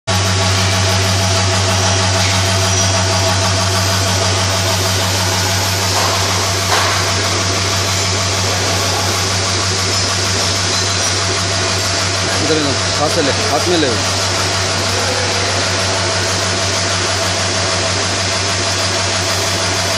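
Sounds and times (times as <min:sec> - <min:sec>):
vibratory feeder buzzing: 0:00.1 - 0:19.9.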